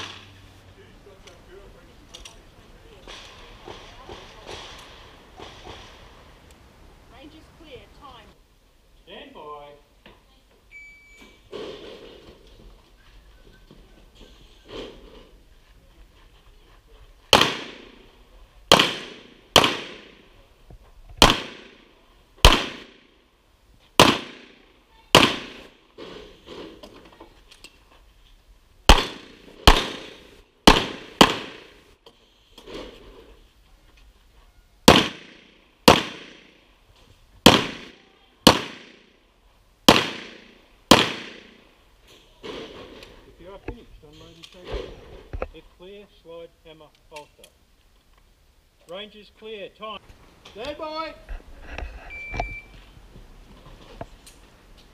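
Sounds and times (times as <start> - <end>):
pistol shots with echo: 17.3 - 18.0, 18.7 - 20.3, 21.2 - 23.0, 24.0 - 25.7, 28.9 - 31.8, 34.8 - 36.6, 37.4 - 39.1, 39.9 - 41.6.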